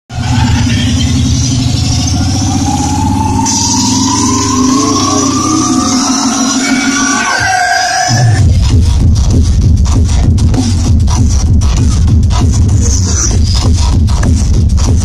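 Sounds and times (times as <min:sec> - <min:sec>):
synth tone climbing in pitch: 0:00.1 - 0:08.4
pulsing bass line: 0:00.1 - 0:15.0.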